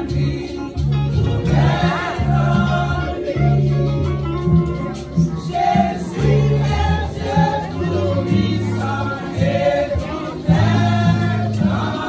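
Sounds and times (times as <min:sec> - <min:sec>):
women's choir singing a hymn: 0:00.0 - 0:04.0, 0:05.2 - 0:12.0.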